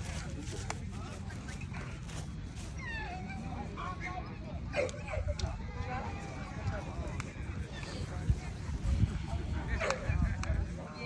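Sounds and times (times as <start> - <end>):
faint background voices: 0.0 - 11.0.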